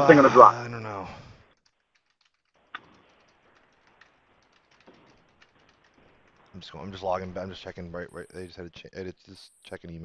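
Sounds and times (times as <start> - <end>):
computer keyboard clicks: 1.5 - 6.0.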